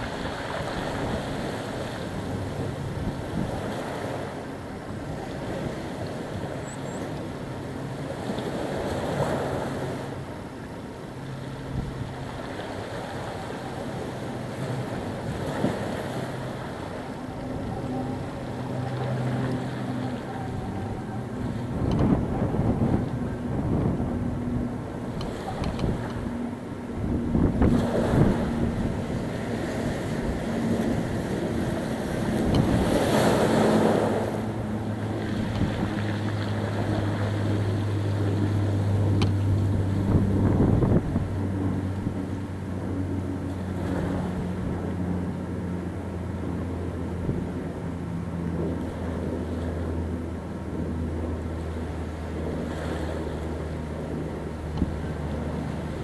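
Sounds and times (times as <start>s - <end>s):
wind gusts on microphone: 0.0s - 10.5s, 11.2s - 56.0s
low engine drone: 0.0s - 56.0s
sea waves washing: 0.0s - 56.0s.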